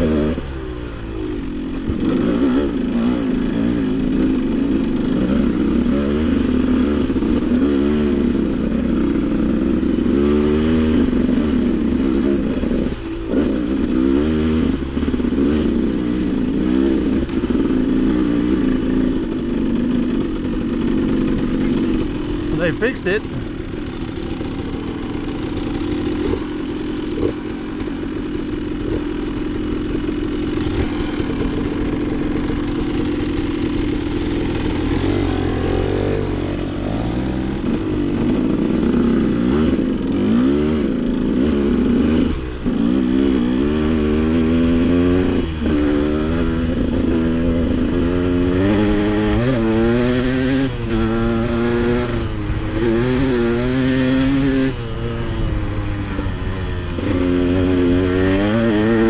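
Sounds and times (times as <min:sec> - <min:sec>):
dirt bike engine: 0:00.0 - 0:59.0.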